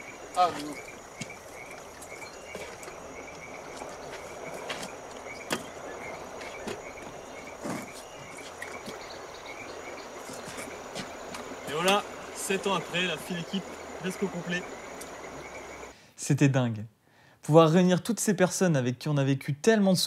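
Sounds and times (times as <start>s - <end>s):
faint short insect chirps: 0.0s - 16.0s
insects buzzing: 0.0s - 16.0s.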